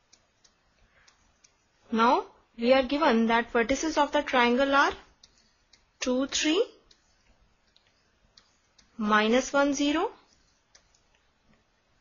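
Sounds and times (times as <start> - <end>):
stylus tapping pen tablet: 0.0 - 1.9, 3.7 - 12.0.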